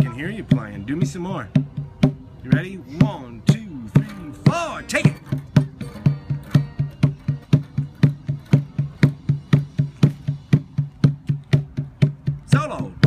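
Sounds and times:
steady percussion knocks: 0.0 - 13.0.

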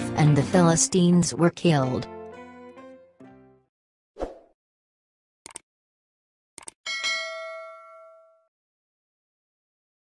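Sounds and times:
bright bell ding: 6.9 - 8.5.

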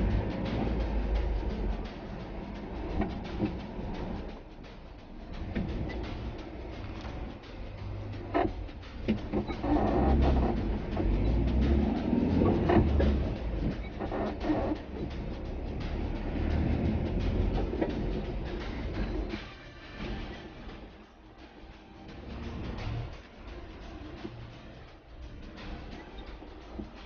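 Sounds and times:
car rattles and knocks: 0.0 - 4.5, 5.4 - 20.8
car engine and road rumble: 0.0 - 27.0.

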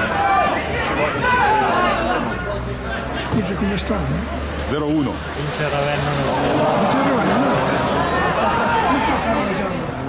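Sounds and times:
steady background noise: 0.0 - 10.0
voices calling and chattering: 0.0 - 10.0.

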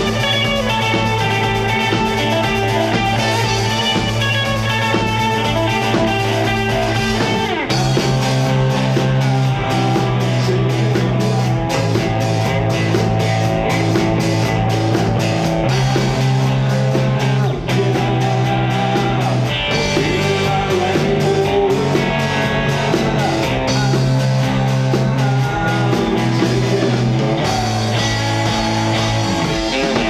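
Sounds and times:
man singing: 0.0 - 13.1, 16.9 - 30.0
rock band playing: 0.0 - 30.0.

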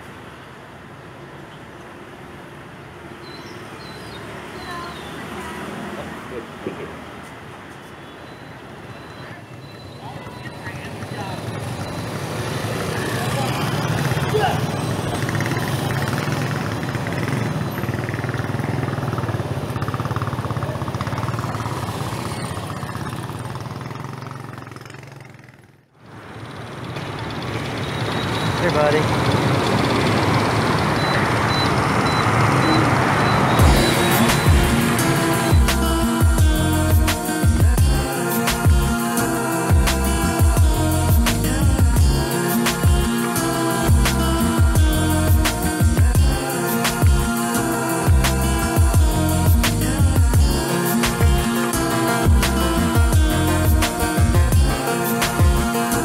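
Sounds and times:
motorbikes: 0.0 - 56.0
street traffic: 0.0 - 56.0
song with singing voice: 33.0 - 56.0.

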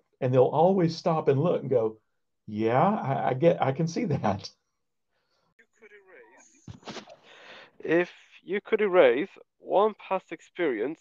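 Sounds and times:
breath: 7.2 - 7.8.

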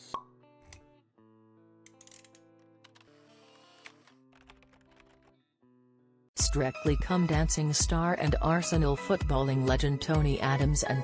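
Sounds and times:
quiet background music: 6.4 - 11.0.

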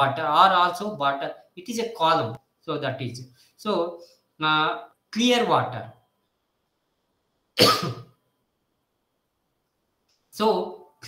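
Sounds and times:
man coughing: 7.6 - 8.1.

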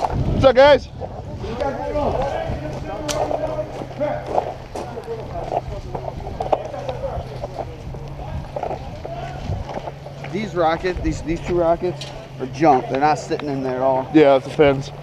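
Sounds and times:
footsteps: 0.0 - 15.0
indistinct talk of people: 0.0 - 15.0.

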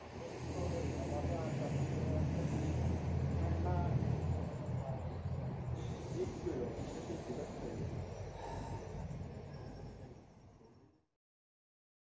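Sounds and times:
faint murmuring voices: 0.0 - 11.0.

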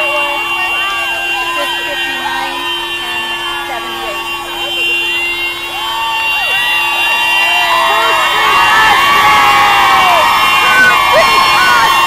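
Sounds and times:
car horn blast: 0.0 - 12.0
crowd shouting and cheering: 0.0 - 12.0.

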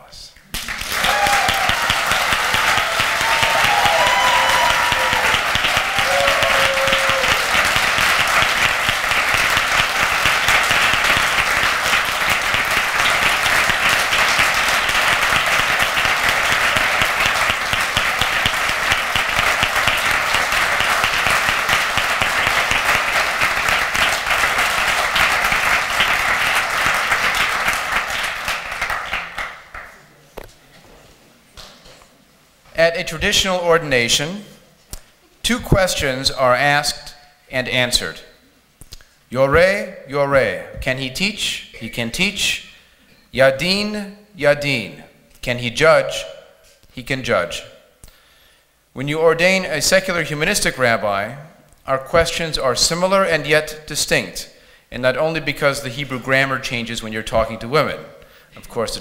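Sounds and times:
audience applauding: 0.5 - 30.0.

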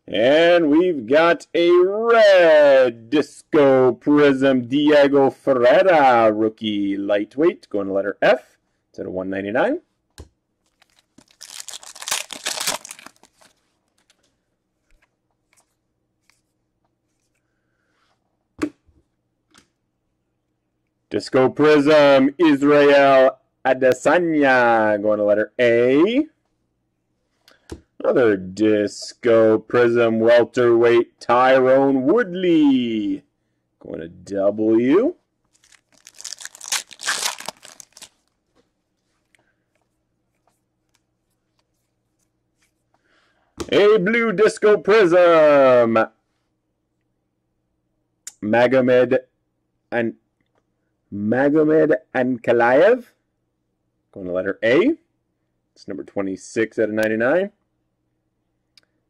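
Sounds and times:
wrapper crackling and crinkling: 10.7 - 14.1, 35.5 - 38.4.

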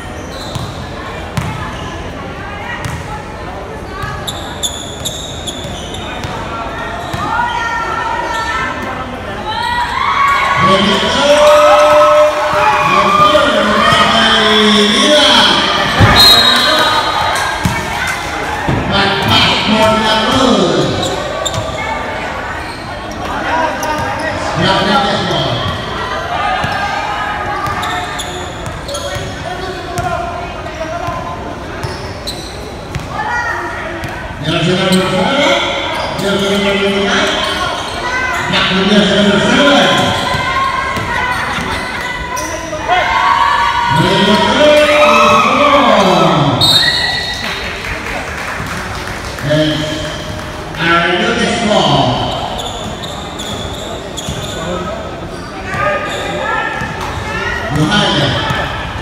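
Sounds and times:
basketball bouncing on wooden court: 0.5 - 0.8, 1.4 - 1.6, 2.8 - 3.1, 17.6 - 17.9
people shouting in echoing hall: 6.7 - 22.5, 33.1 - 47.3.

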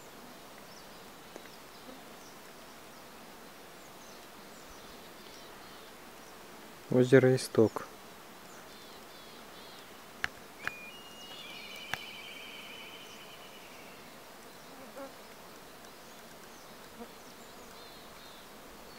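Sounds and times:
honeybees buzzing: 0.0 - 18.9
sharp clicks: 10.2 - 12.1, 15.3 - 17.0
trilling chirp: 10.6 - 14.1.

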